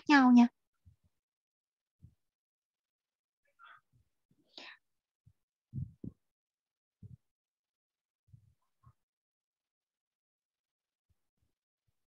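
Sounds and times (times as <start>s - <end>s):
faint breathing: 4.4s - 5.0s
soft low thuds: 5.7s - 6.3s.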